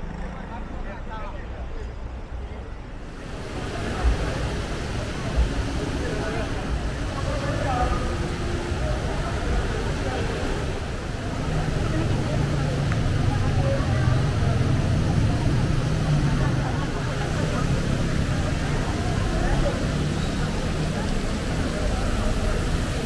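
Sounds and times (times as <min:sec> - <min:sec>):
low traffic rumble: 0:00.0 - 0:23.0
voices of passers-by: 0:00.0 - 0:23.0.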